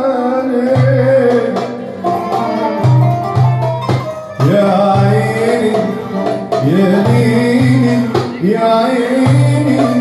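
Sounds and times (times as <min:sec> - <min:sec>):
violin and qanun melody: 0:00.0 - 0:10.0
hand drum strokes and taps: 0:00.8 - 0:08.6.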